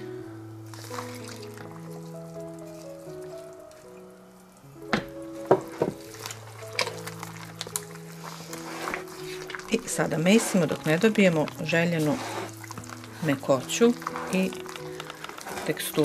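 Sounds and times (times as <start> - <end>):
music with slow held notes: 0.0 - 16.0
milk pouring into a bowl: 0.7 - 4.1, 5.4 - 16.0
dough squished by hand: 4.9 - 16.0.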